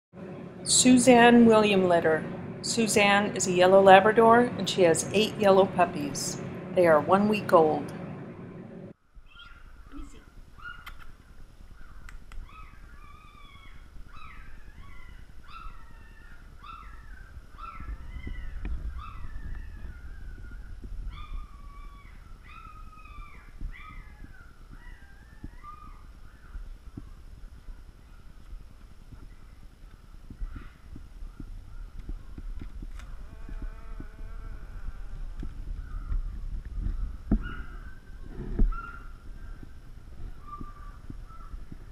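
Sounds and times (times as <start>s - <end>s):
low rumble: 0.2s - 9.0s, 12.4s - 41.9s
puppy squealing: 12.4s - 17.0s, 17.6s - 26.0s, 38.7s - 39.1s.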